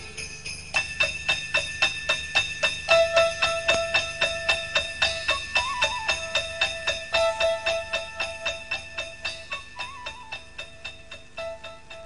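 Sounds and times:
instrumental christmas music: 0.0 - 12.0
sleigh bells shaking: 0.0 - 12.0.

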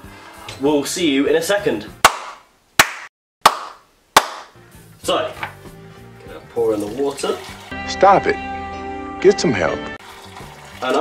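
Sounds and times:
sharp hand claps with echo: 2.0 - 4.6.

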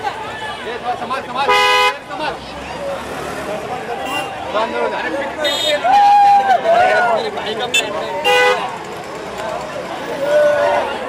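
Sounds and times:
crowd of people talking: 0.0 - 11.0
car horn honk: 1.4 - 2.0, 4.0 - 4.4, 7.7 - 8.7.

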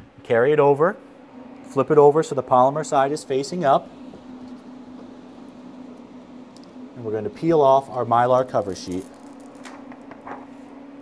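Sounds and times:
dryer fans humming: 0.0 - 11.0
plastic sheet peeling crackle: 8.4 - 10.4.

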